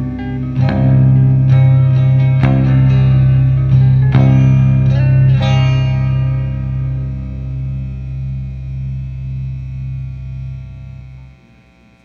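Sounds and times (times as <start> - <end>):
distorted electric guitar low note: 0.0 - 12.0.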